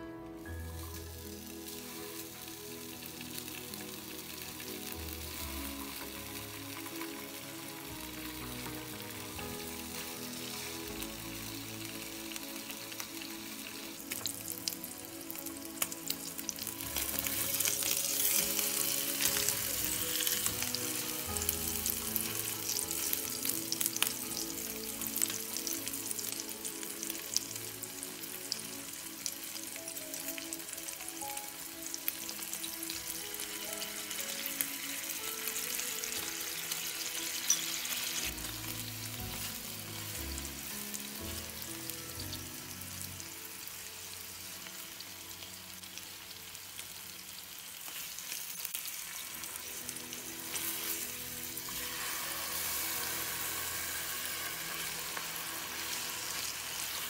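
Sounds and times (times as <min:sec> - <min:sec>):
meat sizzling in oil: 0:00.4 - 0:57.0.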